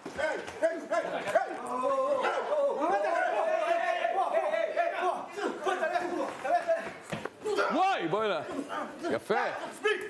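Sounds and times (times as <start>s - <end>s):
men shouting in a scuffle: 0.0s - 10.0s.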